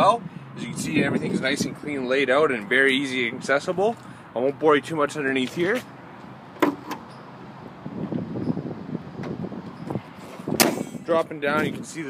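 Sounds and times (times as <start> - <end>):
wind buffeting microphone: 0.0 - 3.9, 7.5 - 12.0.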